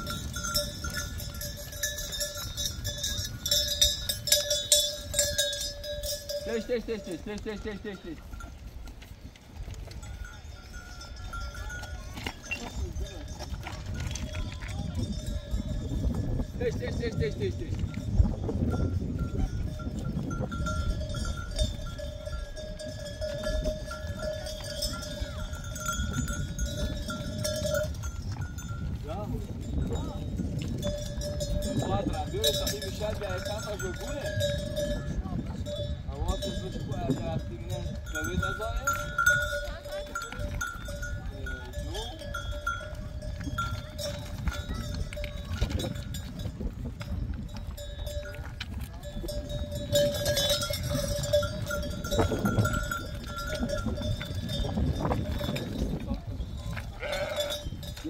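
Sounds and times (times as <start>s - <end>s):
animal bells ringing: 0.0s - 58.0s
animals shuffling: 0.0s - 58.0s
goats and sheep bleating: 56.7s - 58.0s.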